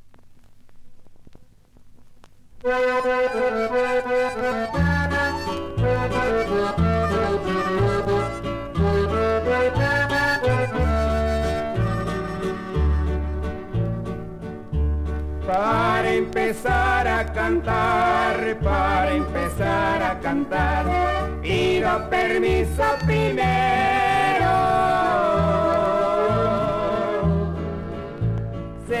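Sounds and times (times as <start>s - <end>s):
vinyl surface crackle: 0.0s - 3.4s.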